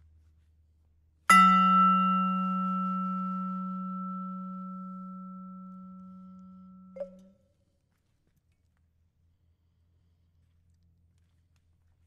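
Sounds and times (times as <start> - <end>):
low vibraphone note: 1.3 - 7.3.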